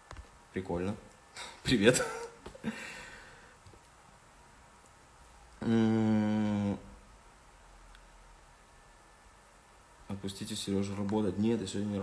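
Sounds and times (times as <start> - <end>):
man humming: 5.6 - 7.0.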